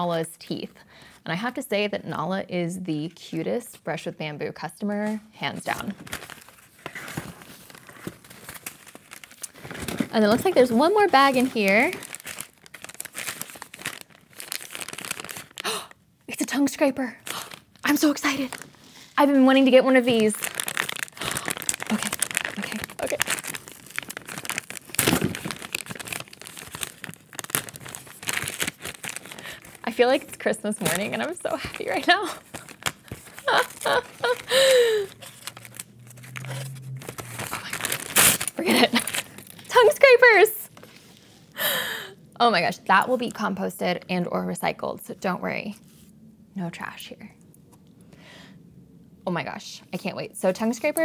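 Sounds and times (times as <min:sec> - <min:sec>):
paper bag crinkling: 0:05.7 - 0:15.8, 0:17.2 - 0:40.9.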